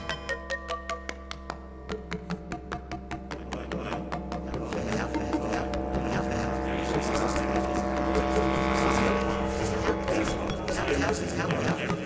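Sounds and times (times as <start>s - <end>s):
bass clarinet drone: 0.0s - 12.0s
constant low hum: 1.2s - 12.0s.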